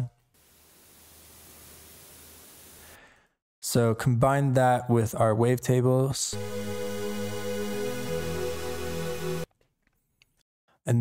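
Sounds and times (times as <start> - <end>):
airy synthesizer noise pad: 6.3 - 9.5.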